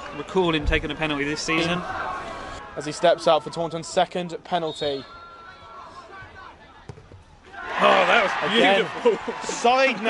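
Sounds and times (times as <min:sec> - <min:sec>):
crowd cheering: 0:01.2 - 0:03.8, 0:07.4 - 0:10.0.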